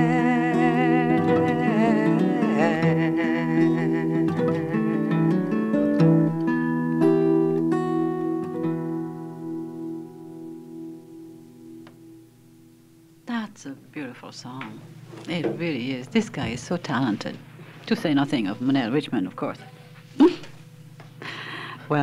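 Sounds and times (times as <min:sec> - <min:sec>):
person singing with vibrato: 0:00.0 - 0:05.7
acoustic guitar: 0:00.0 - 0:22.0.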